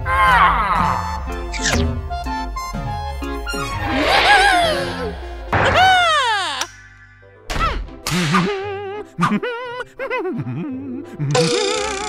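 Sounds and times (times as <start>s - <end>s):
warbling cartoon cry: 3.8s - 6.7s
whip-like crack: 7.5s - 8.6s.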